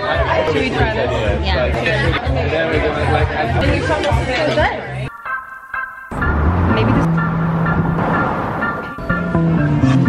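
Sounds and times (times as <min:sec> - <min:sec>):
pop backing music with bass: 0:06.1 - 0:10.0.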